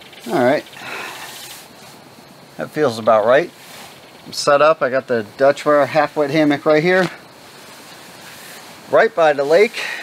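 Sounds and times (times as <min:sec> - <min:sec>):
outdoor background hiss: 0:00.0 - 0:10.0.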